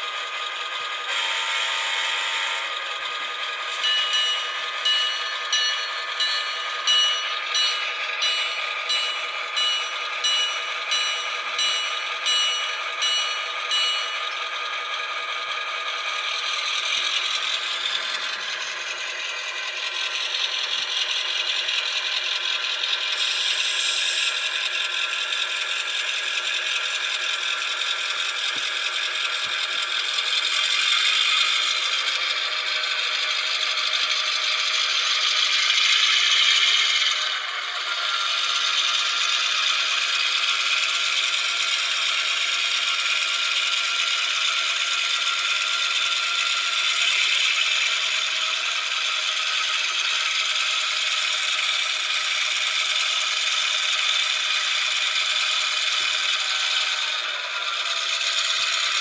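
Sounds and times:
thin rattly diesel engine sound: 0:00.0 - 0:59.0.

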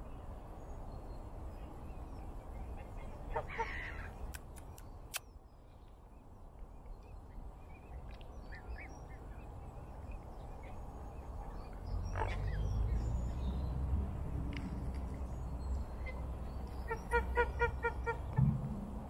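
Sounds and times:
water birds calling: 0:00.8 - 0:05.8, 0:06.8 - 0:13.8, 0:14.8 - 0:18.5
low rumble: 0:18.2 - 0:19.0.

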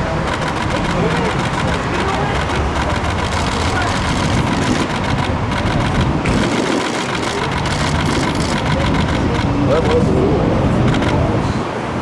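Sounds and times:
vehicle engine running: 0:00.0 - 0:10.2
people talking indistinctly: 0:00.0 - 0:11.6
traffic: 0:00.0 - 0:12.0.

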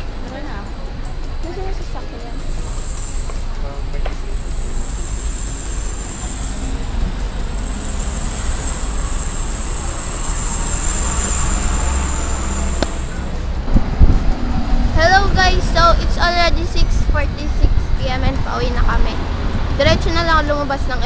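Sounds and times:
rumble of passing cars: 0:00.0 - 0:21.0.

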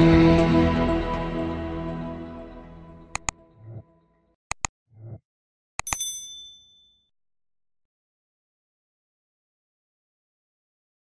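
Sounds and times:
sharp click: 0:03.2 - 0:03.4, 0:04.5 - 0:04.7, 0:05.8 - 0:06.1
bright bell ding: 0:05.8 - 0:07.1.

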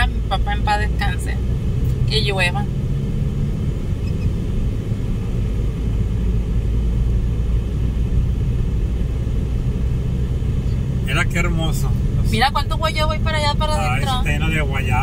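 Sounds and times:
car engine hum: 0:00.0 - 0:15.0
tyre road noise: 0:00.0 - 0:15.0.

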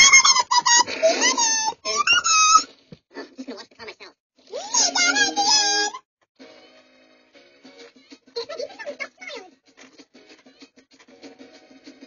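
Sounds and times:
high-pitched squeaky voice: 0:00.0 - 0:02.7, 0:04.5 - 0:06.0.

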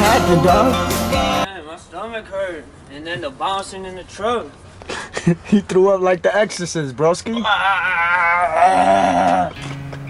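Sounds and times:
music with guitar: 0:00.0 - 0:01.5, 0:09.5 - 0:10.0
man's quivering bleat-like voice: 0:07.3 - 0:09.6.

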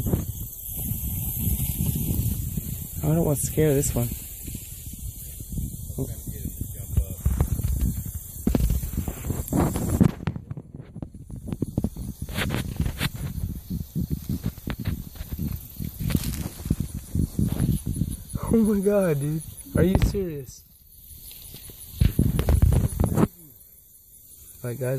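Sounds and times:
rustling in dry leaves: 0:00.0 - 0:10.4, 0:11.0 - 0:23.4.

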